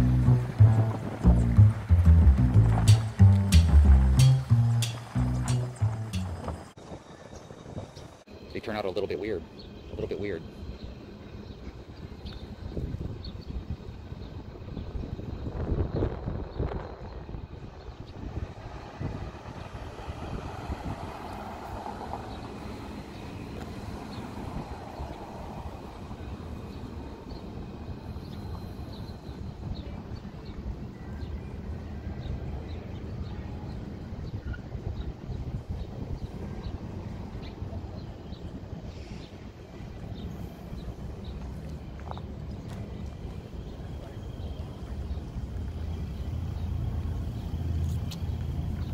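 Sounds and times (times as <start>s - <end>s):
cars driving past: 0.0s - 6.8s, 18.2s - 29.4s.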